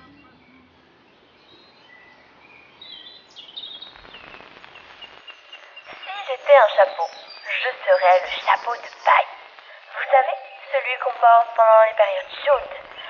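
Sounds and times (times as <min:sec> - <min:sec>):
high chirps and whistled glides: 0:00.0 - 0:13.0
low hiss: 0:00.0 - 0:13.0.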